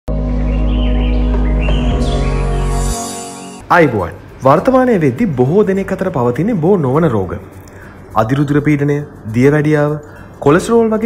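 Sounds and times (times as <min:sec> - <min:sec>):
birds chirping: 0:00.1 - 0:03.6
held music chord: 0:00.1 - 0:03.7.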